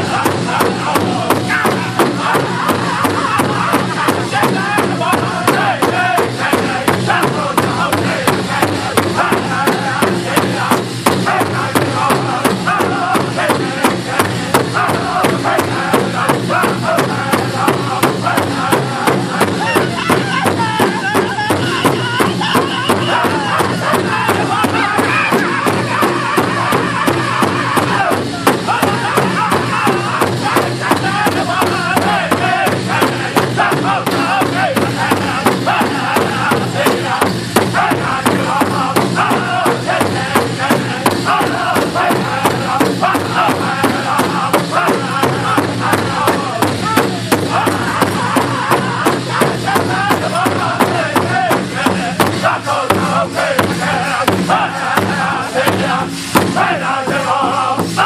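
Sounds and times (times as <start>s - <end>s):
large drum steady beat: 0.0s - 58.0s
men singing in high voices: 0.0s - 58.0s.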